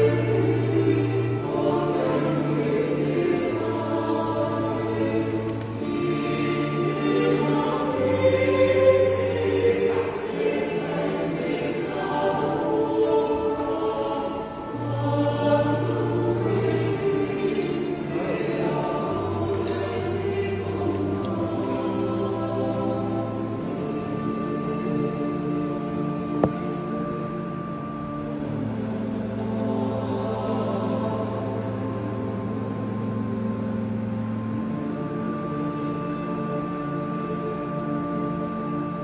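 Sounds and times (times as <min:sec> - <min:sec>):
choir singing a hymn: 0:00.0 - 0:39.0
sustained accompaniment with bass notes: 0:00.0 - 0:39.0.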